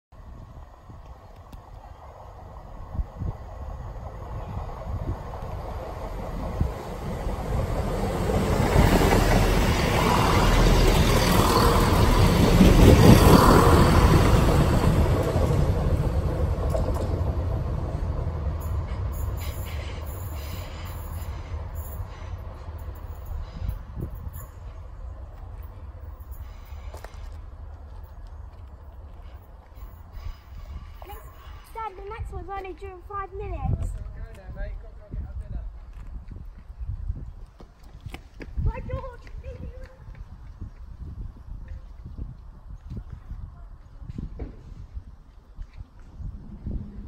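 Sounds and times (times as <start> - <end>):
diesel train passing: 0.1 - 33.8, 44.6 - 47.0.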